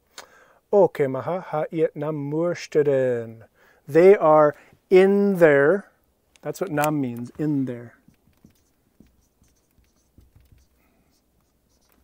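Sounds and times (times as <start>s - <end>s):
marker scratching on whiteboard: 7.4s - 12.0s.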